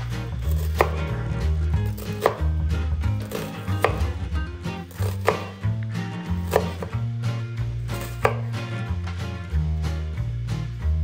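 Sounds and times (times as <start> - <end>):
knife cutting onion on board: 0.0 - 9.2
background music: 0.0 - 11.0.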